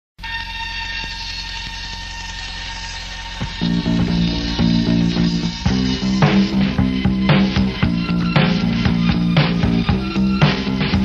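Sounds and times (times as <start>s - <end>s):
droning tone: 0.2s - 11.0s
low hum: 0.2s - 11.0s
rock band playing: 3.3s - 11.0s.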